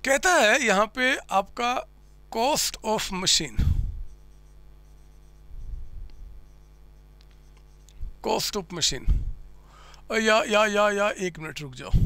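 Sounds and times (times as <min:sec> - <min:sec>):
low electrical hum: 0:00.0 - 0:12.0
marker pen writing on whiteboard: 0:04.1 - 0:05.6, 0:06.2 - 0:07.9
low muffled rumble: 0:09.0 - 0:09.5.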